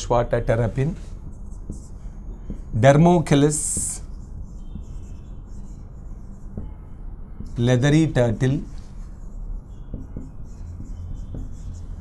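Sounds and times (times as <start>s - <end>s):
steady low hum: 0.0s - 12.0s
marker scratching on whiteboard: 0.6s - 12.0s
marker tip tapping: 9.9s - 11.6s.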